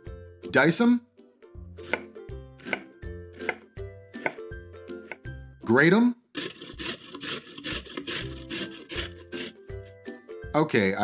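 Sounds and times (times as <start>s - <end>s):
light background music: 0.0s - 11.0s
knife chopping on wooden board: 1.8s - 3.6s, 4.2s - 4.4s, 5.0s - 5.3s, 6.4s - 9.6s.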